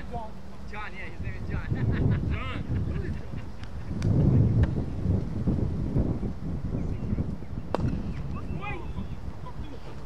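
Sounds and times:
wind buffeting microphone: 0:00.0 - 0:10.0
cricket bat striking ball: 0:07.7 - 0:08.0.

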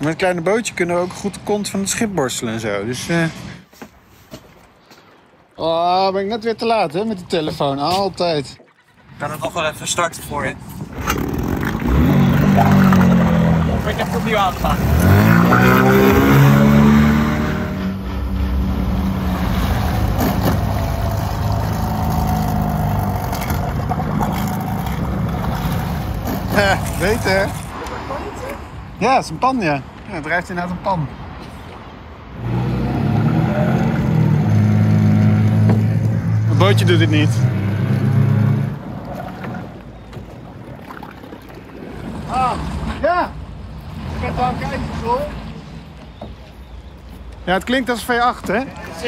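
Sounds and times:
motorboat engine humming: 0:15.7 - 0:27.6, 0:33.8 - 0:42.9
outboard motor droning: 0:38.2 - 0:42.8.

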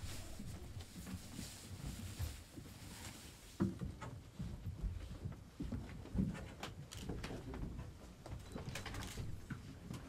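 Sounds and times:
clothing rustling and shuffling: 0:00.0 - 0:05.7.

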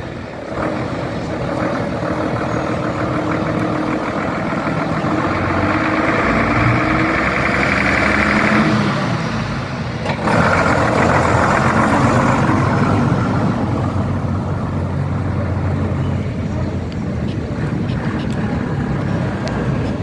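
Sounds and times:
bus engine passing: 0:00.0 - 0:20.0.

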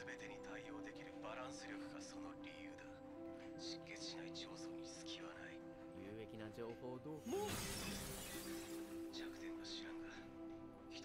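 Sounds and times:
shattering crash: 0:07.3 - 0:09.0.

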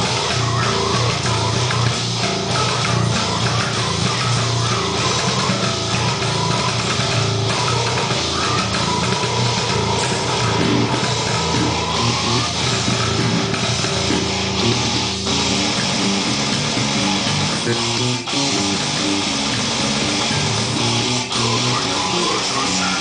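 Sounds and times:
death metal drums and guitars: 0:00.0 - 0:23.0
electric bass played fingerstyle: 0:00.0 - 0:23.0.

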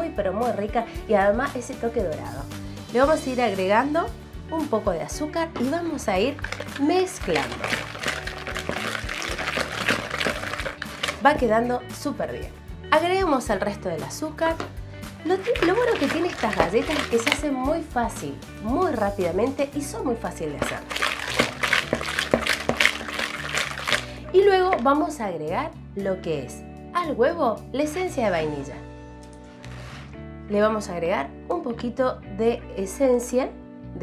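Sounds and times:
wire whisk beating in a bowl: 0:06.3 - 0:11.4, 0:15.3 - 0:17.6, 0:20.6 - 0:24.9.

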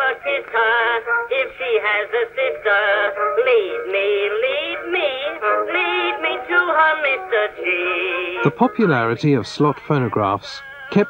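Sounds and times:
person singing on old recording: 0:00.0 - 0:11.0.

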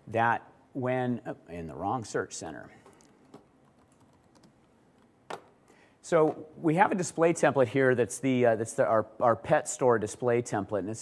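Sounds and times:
computer keyboard keystrokes: 0:02.9 - 0:04.6.

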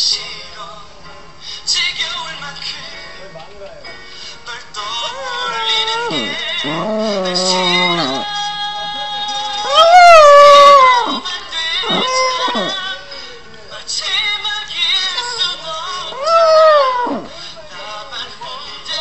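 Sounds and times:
puppy howling: 0:05.2 - 0:08.3, 0:09.6 - 0:12.8, 0:16.1 - 0:17.4.

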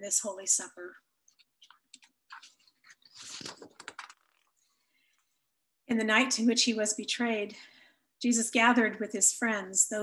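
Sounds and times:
clicks and rustling: 0:01.3 - 0:04.5.

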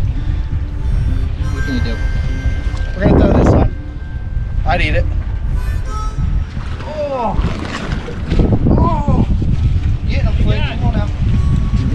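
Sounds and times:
faint high steady tones: 0:00.0 - 0:06.6
wind buffeting microphone: 0:00.0 - 0:11.9.

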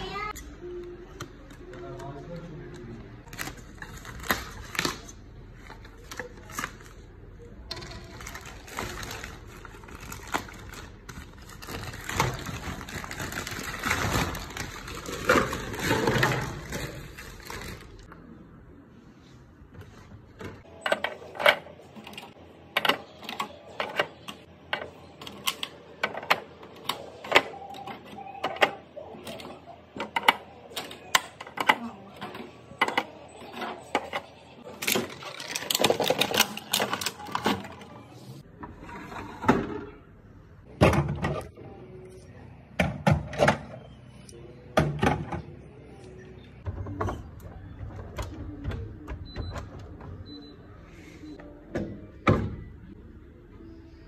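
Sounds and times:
plastic wrap crinkling and tearing: 0:07.8 - 0:18.1, 0:34.7 - 0:37.6.

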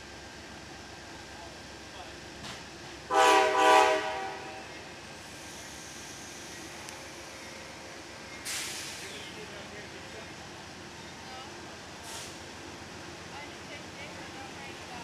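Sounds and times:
train horn blasts: 0:03.1 - 0:04.7
air hiss: 0:05.2 - 0:06.9, 0:08.4 - 0:09.3.

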